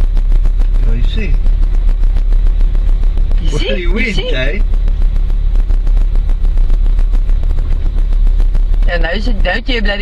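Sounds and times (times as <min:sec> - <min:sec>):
loud low rumble: 0:00.0 - 0:10.0.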